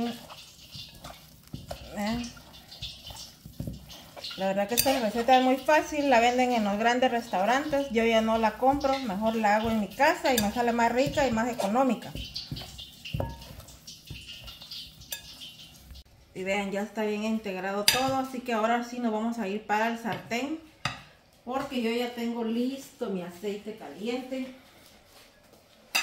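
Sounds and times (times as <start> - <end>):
hands squishing raw chicken: 0.0 - 15.9.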